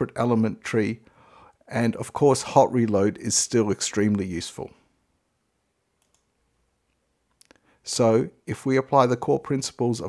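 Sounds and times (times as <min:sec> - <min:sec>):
faint click: 0:06.0 - 0:06.3.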